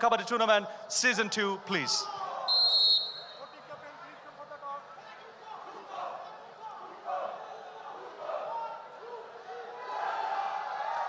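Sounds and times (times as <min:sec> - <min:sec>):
crowd chatter in a hall: 0:00.7 - 0:11.0
referee's whistle blast: 0:02.5 - 0:03.6.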